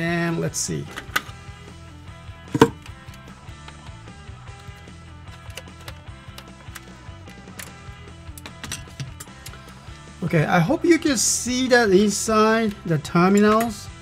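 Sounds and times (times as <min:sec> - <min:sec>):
background music: 0:00.0 - 0:14.0
screwdriver knocks and clicks: 0:02.5 - 0:03.0.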